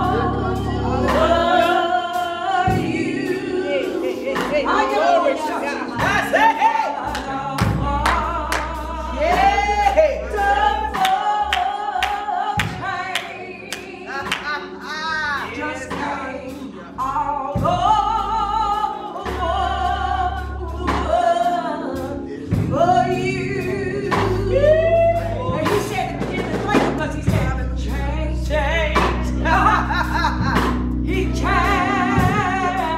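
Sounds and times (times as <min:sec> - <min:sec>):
gospel song: 0:00.0 - 0:32.9.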